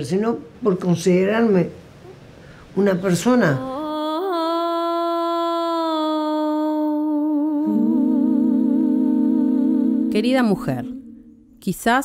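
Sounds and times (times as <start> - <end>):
woman humming held note: 3.6 - 11.5
lower hummed harmony note: 7.3 - 11.6.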